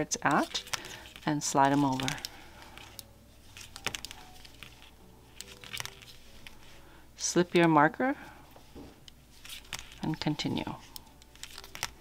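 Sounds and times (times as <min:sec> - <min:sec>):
yarn rustling: 0:00.0 - 0:12.0.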